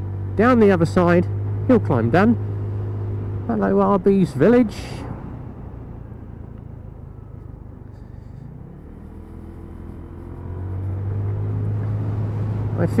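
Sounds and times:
motorbike engine drone: 0.0s - 13.0s
road and wind noise: 0.0s - 13.0s.

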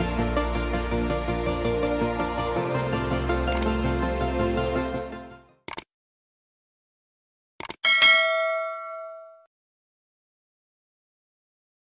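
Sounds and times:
bell-like chime: 7.8s - 9.5s.

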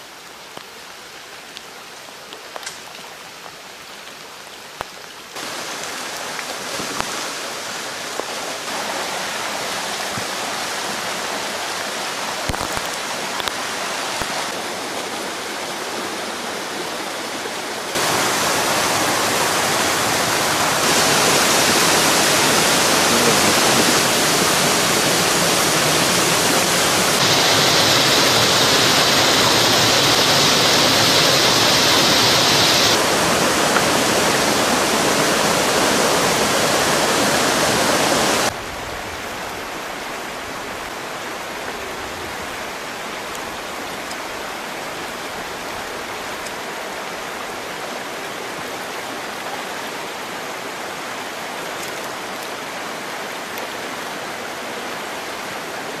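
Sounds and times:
waterfall and creek rushing: 0.0s - 56.0s.

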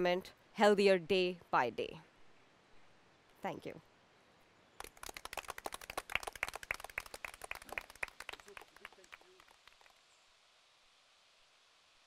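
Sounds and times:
people clapping: 4.8s - 10.0s.

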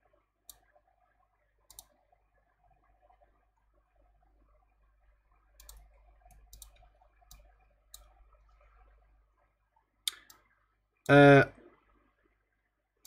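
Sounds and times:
computer mouse clicks: 1.7s - 2.0s, 5.6s - 8.2s, 10.1s - 10.4s.

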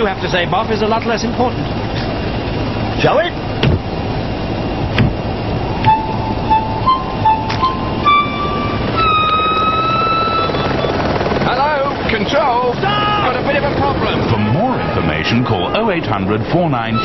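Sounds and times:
helicopter rumble: 0.0s - 17.0s
climbing notes and held note: 5.8s - 11.3s
people shouting: 12.8s - 13.4s, 14.3s - 15.9s.

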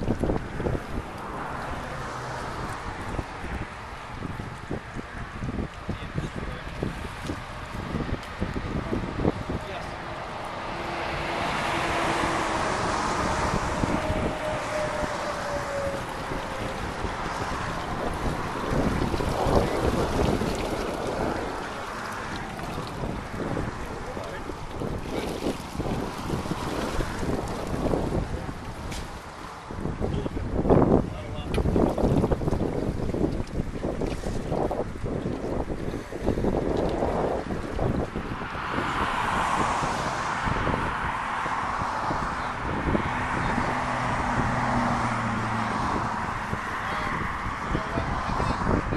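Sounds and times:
water splashes: 0.0s - 48.9s
wind buffeting microphone: 0.0s - 48.9s.

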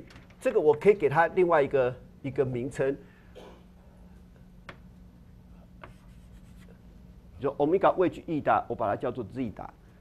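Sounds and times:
low steady hum: 0.0s - 10.0s
chalk scratching on blackboard: 5.8s - 6.8s.

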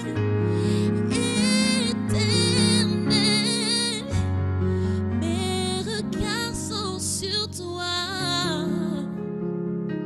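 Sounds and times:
person singing wordless line: 1.0s - 4.3s.

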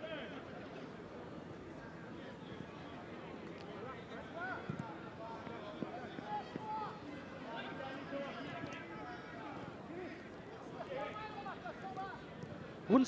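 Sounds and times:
stadium murmur: 0.0s - 13.0s.

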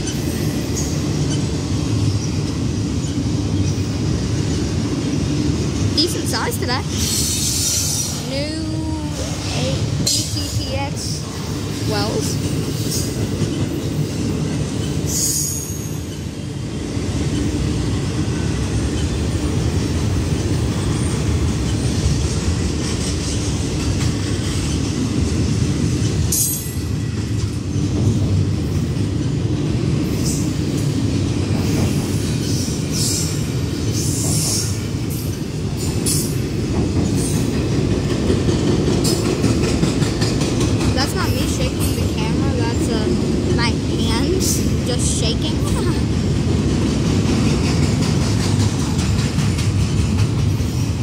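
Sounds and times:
train wheels rumbling on rail: 0.0s - 51.0s.

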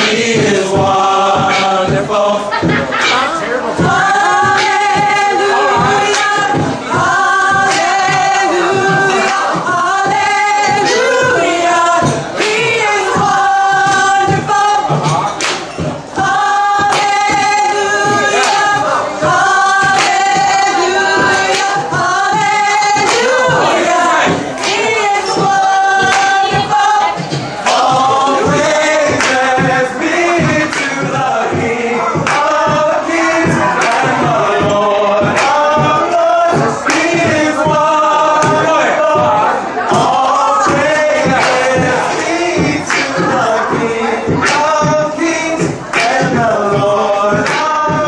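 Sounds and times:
a cappella group singing harmony: 0.0s - 48.0s
beatboxed percussion: 0.0s - 48.0s.

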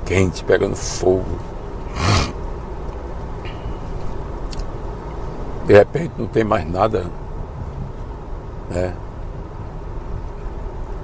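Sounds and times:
car interior rumble: 0.0s - 11.0s
short breathy burst: 1.9s - 2.4s.

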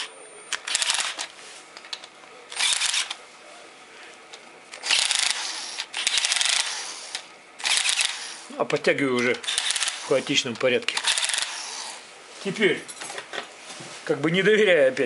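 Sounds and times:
torque clutch ratcheting clicks: 4.8s - 10.0s, 10.6s - 11.6s.

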